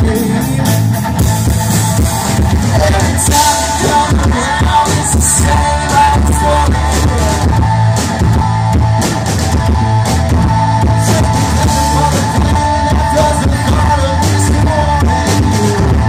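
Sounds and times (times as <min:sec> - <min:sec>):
person singing: 0:00.0 - 0:01.3, 0:02.4 - 0:08.1, 0:10.7 - 0:16.0
distorted electric guitar: 0:00.0 - 0:16.0
drums: 0:00.0 - 0:16.0
heavy bass: 0:00.0 - 0:16.0
rock band playing loudly: 0:00.0 - 0:16.0.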